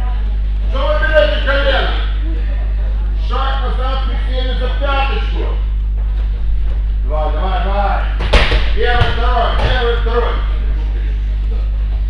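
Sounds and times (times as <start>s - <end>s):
voices: 0.0s - 5.8s
steady low hum: 0.0s - 12.0s
body slapping on mat: 8.2s - 9.8s.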